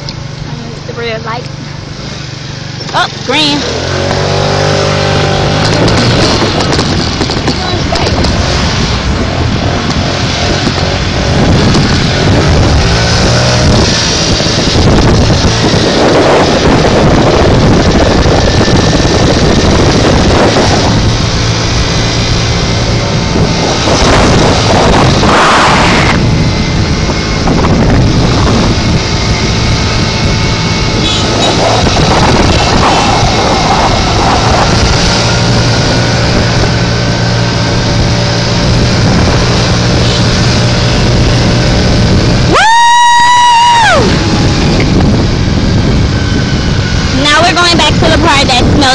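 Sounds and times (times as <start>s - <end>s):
moped engine running: 0.0s - 42.6s, 43.7s - 48.9s
wind rushing over microphone: 0.0s - 48.9s.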